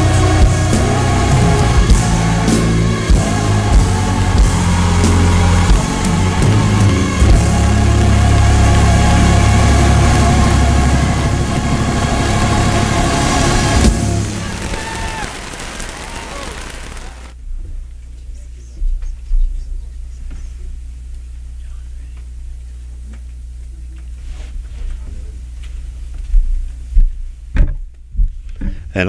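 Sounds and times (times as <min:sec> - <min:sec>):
live gospel music: 0:00.0 - 0:17.3.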